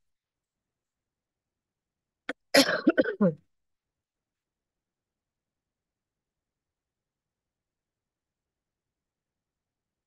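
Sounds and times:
woman coughing: 2.3s - 3.4s.

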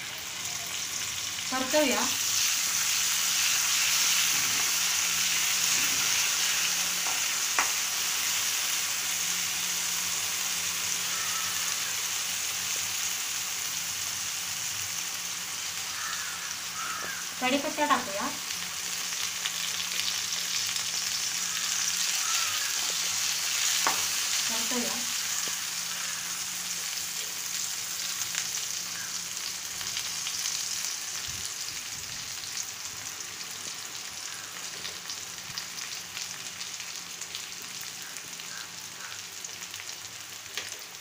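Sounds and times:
onion sizzling in hot oil: 0.0s - 41.0s.

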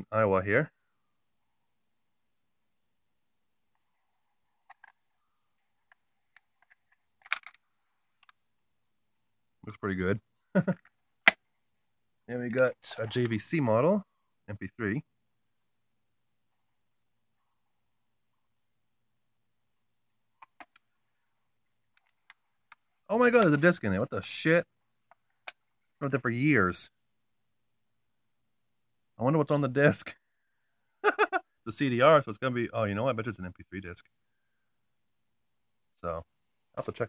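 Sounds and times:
faint sharp plastic clicks: 20.3s - 21.0s, 21.6s - 23.6s, 25.0s - 25.7s.

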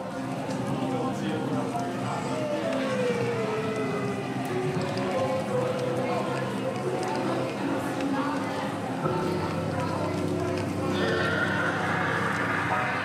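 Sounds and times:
indistinct chatter of voices: 0.0s - 13.0s.

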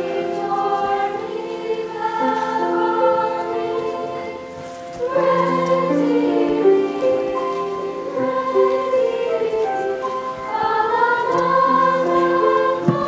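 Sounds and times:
choir singing held notes: 0.0s - 13.0s
piano accompaniment: 0.0s - 13.0s.

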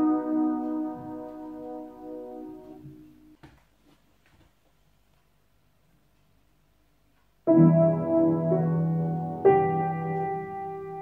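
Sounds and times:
piano chord: 0.0s - 3.4s, 7.5s - 11.0s.

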